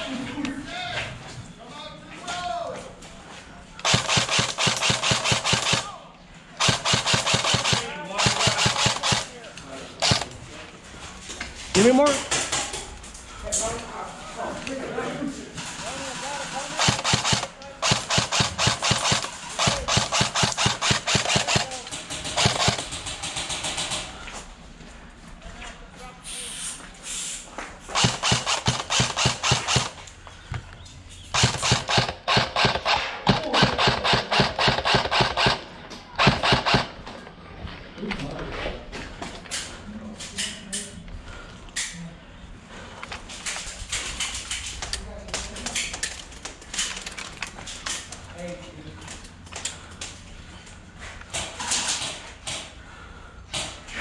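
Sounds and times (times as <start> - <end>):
airsoft rifle full-auto bursts: 3.8 - 6.0, 6.6 - 9.4, 10.0 - 10.4, 16.4 - 24.0, 27.9 - 30.1, 31.3 - 37.2.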